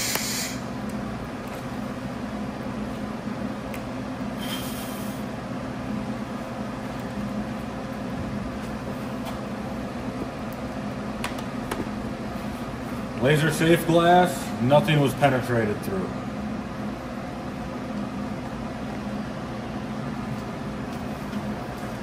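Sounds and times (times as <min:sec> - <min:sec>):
workshop machinery humming: 0:00.0 - 0:22.0.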